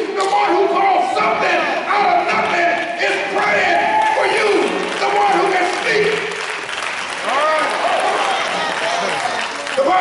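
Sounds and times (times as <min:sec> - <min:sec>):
preacher speaking: 0:00.0 - 0:06.5, 0:07.2 - 0:10.0
congregation applauding: 0:02.8 - 0:10.0.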